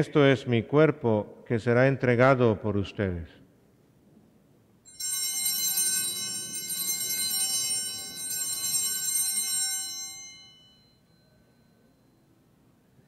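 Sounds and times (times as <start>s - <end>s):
small hand bells ringing: 4.9s - 12.6s.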